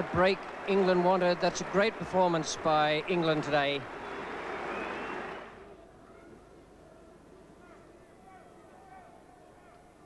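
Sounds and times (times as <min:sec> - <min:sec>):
crowd cheering and applauding: 0:00.0 - 0:05.6.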